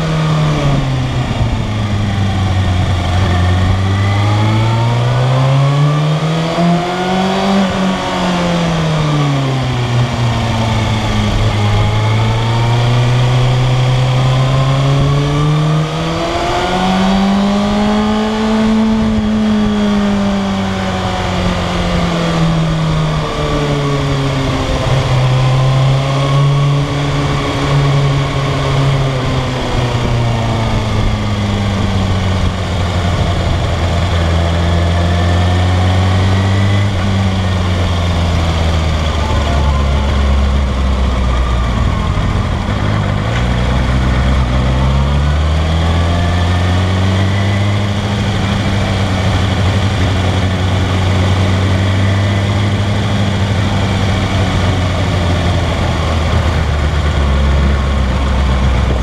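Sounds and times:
motorcycle engine at low revs: 0:00.0 - 0:59.0.

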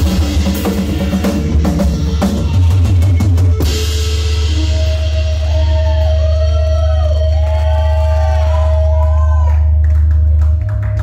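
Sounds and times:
audience whooping: 0:02.0 - 0:11.0.

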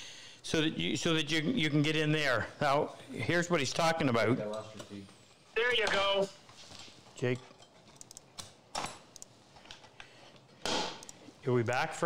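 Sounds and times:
tools clicking and tapping: 0:07.2 - 0:11.3.

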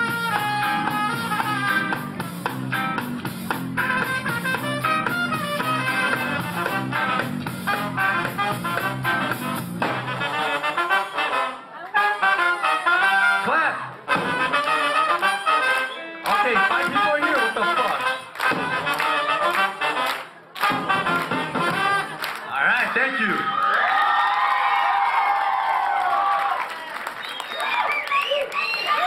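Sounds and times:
trumpet and trombones: 0:00.0 - 0:02.5, 0:03.7 - 0:22.4
bass line: 0:00.0 - 0:10.9, 0:20.6 - 0:22.2
ska band playing: 0:00.0 - 0:22.5.

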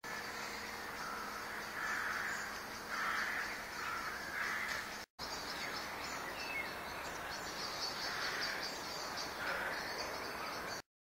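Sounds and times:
crows cawing: 0:00.9 - 0:04.9, 0:08.0 - 0:08.7, 0:09.3 - 0:10.6.

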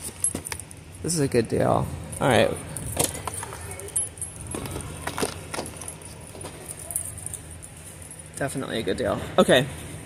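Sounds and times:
bracelet metallic jingling: 0:00.0 - 0:00.9, 0:02.1 - 0:08.8
store ambience hum: 0:00.0 - 0:10.0.

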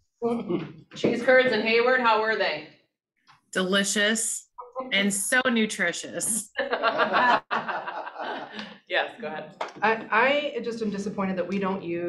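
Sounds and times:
people talking: 0:00.2 - 0:02.8, 0:03.6 - 0:07.4, 0:08.3 - 0:12.0
people laughing: 0:06.6 - 0:08.8.

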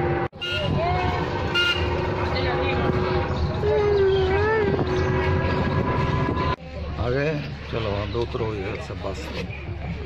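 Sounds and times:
busy street traffic: 0:00.0 - 0:10.0
vehicle horn toot: 0:00.4 - 0:00.9, 0:01.5 - 0:02.1
voices: 0:00.4 - 0:10.0.

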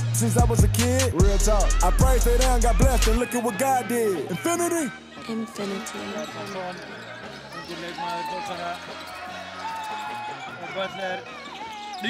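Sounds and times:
voices of players and spectators: 0:00.5 - 0:12.0
short squeaky tones: 0:03.2 - 0:12.0.

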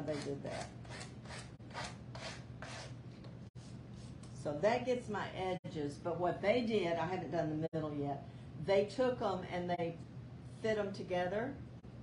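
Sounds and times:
sandpaper scraping wood: 0:00.9 - 0:02.9.

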